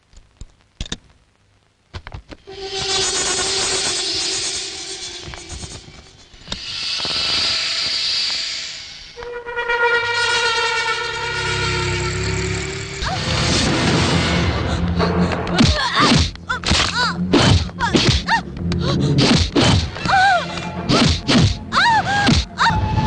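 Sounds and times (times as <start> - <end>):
hissing swell: 2.4 - 9.2, 10.0 - 13.5
deep low drone: 2.4 - 15.6
held synthesizer chords: 2.5 - 6.4.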